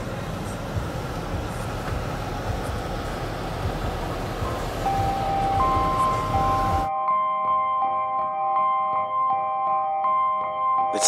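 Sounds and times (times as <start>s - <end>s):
car engine and road noise: 0.0s - 11.0s
bell-like music notes: 4.4s - 11.0s.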